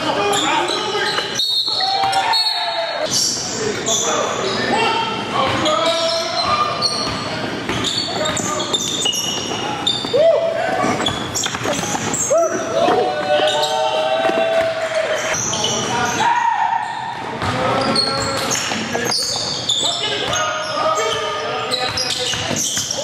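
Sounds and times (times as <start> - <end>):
sneaker squeaks: 0.0 - 14.4, 15.1 - 23.0
players calling out: 0.0 - 23.0.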